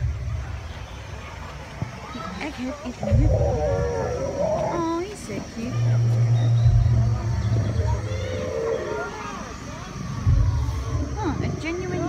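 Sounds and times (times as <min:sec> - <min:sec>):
chatter of voices: 0:00.0 - 0:12.0
low growl from loudspeaker: 0:02.9 - 0:05.1, 0:05.7 - 0:12.0
low thump: 0:03.0 - 0:04.2.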